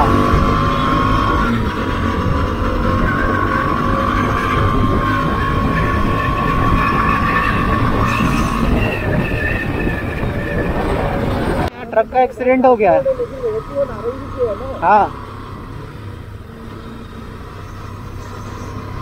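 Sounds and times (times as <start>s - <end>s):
wind rushing on microphone: 0.0s - 12.0s
motorcycle engine and road noise: 0.0s - 19.0s.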